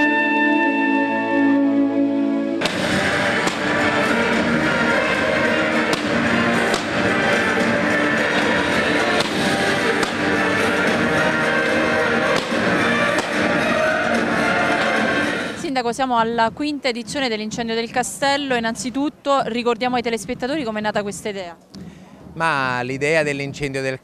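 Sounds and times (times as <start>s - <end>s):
music playing: 0.0s - 24.0s.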